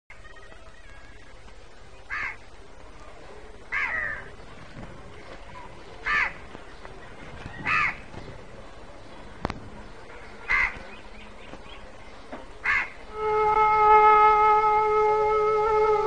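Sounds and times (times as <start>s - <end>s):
low background hiss: 0.1s - 16.0s
crow cawing: 2.1s - 2.4s, 3.7s - 4.3s, 6.0s - 6.4s, 7.6s - 8.0s, 10.5s - 10.8s, 12.6s - 13.0s.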